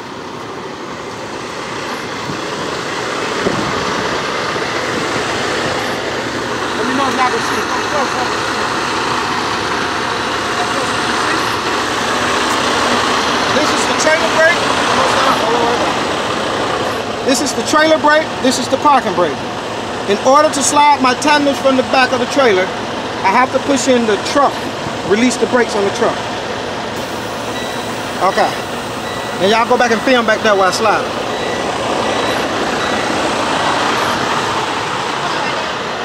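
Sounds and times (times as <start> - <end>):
diesel truck engine idling: 0.0 - 36.0.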